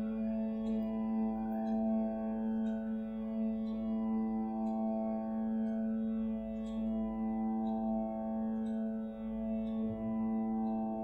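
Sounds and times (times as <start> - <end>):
faint light ticks: 0.0 - 11.0.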